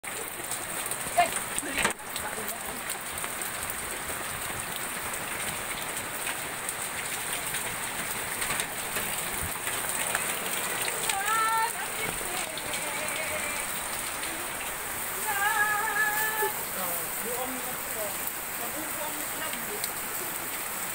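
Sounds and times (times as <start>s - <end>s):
rain pouring down: 0.0s - 20.9s.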